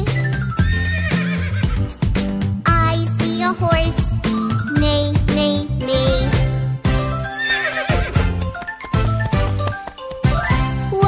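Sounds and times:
children's song music: 0.0s - 11.0s
horse whinny: 0.6s - 1.8s, 7.3s - 8.2s.

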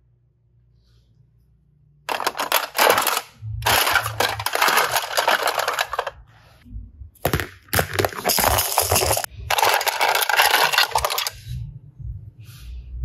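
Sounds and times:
plastic toy capsules clattering: 2.1s - 6.2s, 7.3s - 11.4s.

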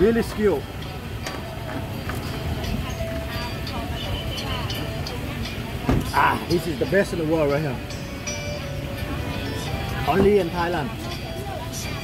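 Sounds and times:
faint music: 0.0s - 12.0s
low traffic rumble: 0.0s - 12.0s.

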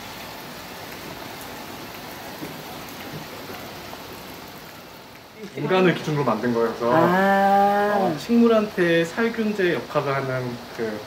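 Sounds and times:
steady hiss of water: 0.0s - 11.0s.

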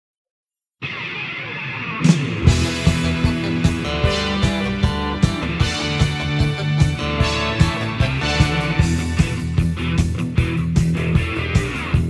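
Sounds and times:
rock song: 0.8s - 12.0s
dense music sting: 2.1s - 12.0s.

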